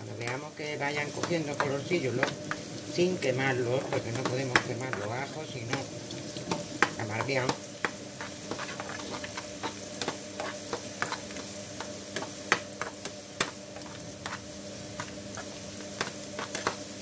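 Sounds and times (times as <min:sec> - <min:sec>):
garlic sizzling in oil: 0:00.0 - 0:17.0
metal skimmer scraping a pan: 0:08.2 - 0:11.4.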